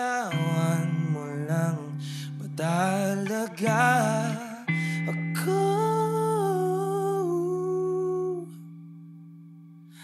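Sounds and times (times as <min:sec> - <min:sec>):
man singing a long note: 0:00.0 - 0:08.7.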